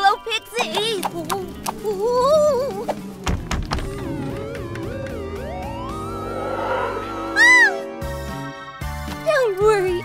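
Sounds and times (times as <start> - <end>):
spooky cartoon music: 0.0 - 10.0.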